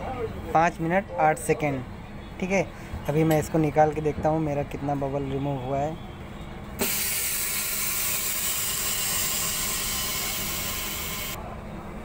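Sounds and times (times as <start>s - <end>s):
compressed air venting hiss: 6.8s - 11.4s.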